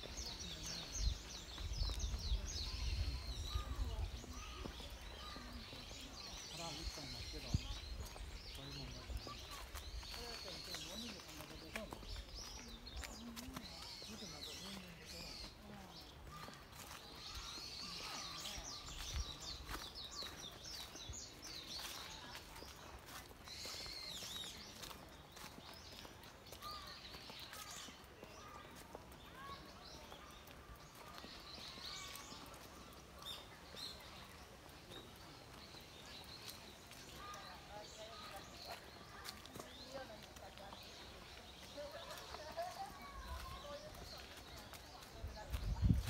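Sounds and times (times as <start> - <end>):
footsteps on paved path: 0.0 - 46.0
songbirds chirping: 0.0 - 46.0.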